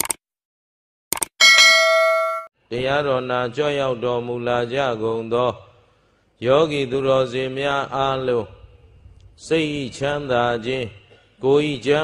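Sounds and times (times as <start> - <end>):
button clicks: 1.2 - 2.5
notification bell chime: 1.4 - 2.5.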